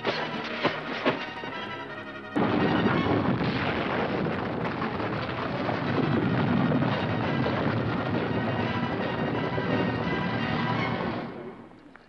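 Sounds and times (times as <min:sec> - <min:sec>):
rushing rumble: 0:02.3 - 0:11.8.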